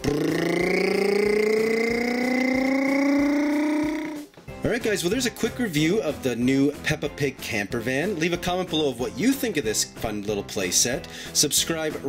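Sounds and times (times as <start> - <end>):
person imitating engine noise: 0.0 - 4.3.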